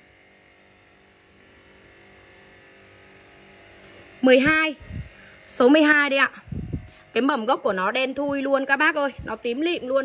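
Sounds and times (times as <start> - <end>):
faint background hum and hiss: 0.0 - 10.0.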